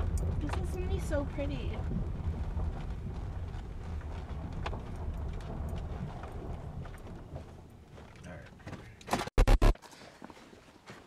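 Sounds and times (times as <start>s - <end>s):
car engine and tyres rumbling: 0.0s - 9.1s.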